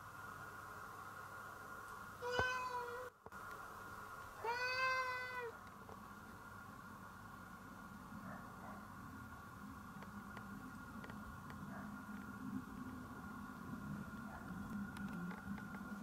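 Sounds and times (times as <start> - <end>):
cat meowing: 2.2 - 3.1, 4.4 - 5.6.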